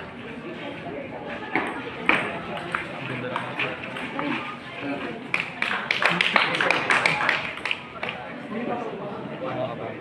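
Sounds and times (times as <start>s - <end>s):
spectators chattering: 0.0s - 10.0s
ping-pong ball hitting paddles: 1.5s - 4.4s.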